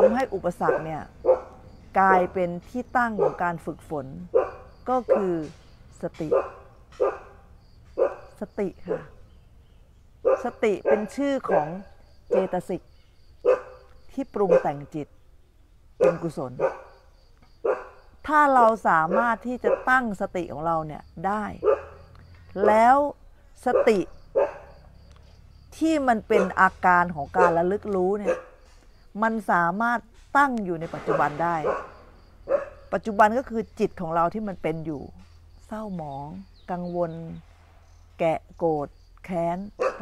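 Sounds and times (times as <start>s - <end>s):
woman speaking: 0.0s - 1.2s, 1.9s - 6.5s, 8.4s - 9.2s, 10.3s - 12.8s, 14.1s - 15.1s, 16.0s - 16.7s, 18.2s - 21.8s, 22.5s - 24.1s, 25.7s - 28.4s, 29.1s - 31.8s, 32.9s - 37.4s, 38.2s - 40.0s
dog barking: 0.0s - 2.4s, 3.1s - 3.6s, 4.3s - 5.4s, 6.2s - 7.4s, 8.0s - 9.2s, 10.2s - 12.8s, 13.4s - 14.9s, 16.0s - 17.0s, 17.6s - 18.0s, 19.0s - 20.1s, 21.6s - 22.9s, 23.6s - 24.9s, 26.2s - 26.7s, 27.3s - 28.6s, 31.0s - 32.9s, 39.8s - 40.0s.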